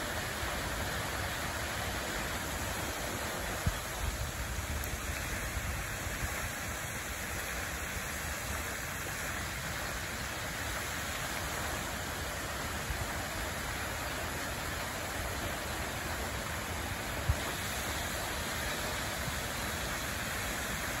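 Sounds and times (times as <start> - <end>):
fountain water splashing: 0.0 - 21.0.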